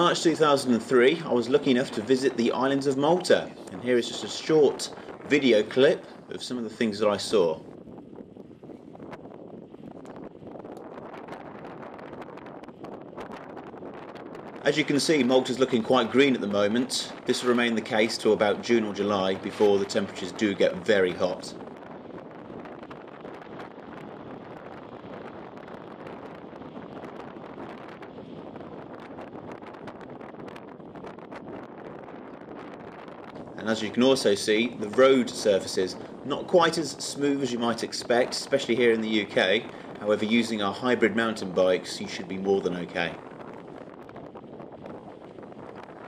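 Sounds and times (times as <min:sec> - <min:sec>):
wind rushing over microphone: 0:00.0 - 0:46.0
bicycle rattling over road: 0:07.8 - 0:46.0.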